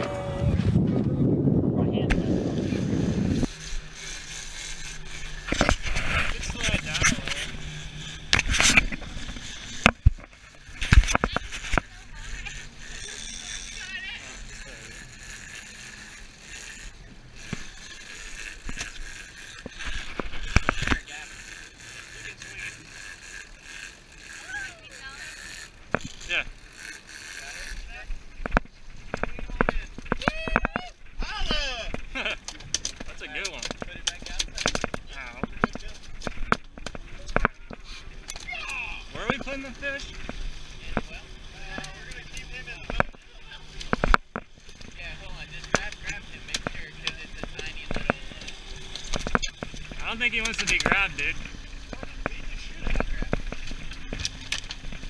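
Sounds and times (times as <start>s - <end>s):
camera being handled: 4.4s - 7.6s, 8.2s - 11.9s.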